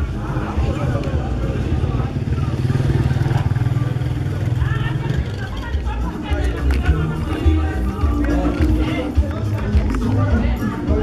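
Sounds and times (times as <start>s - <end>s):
people's voices: 0.0s - 11.0s.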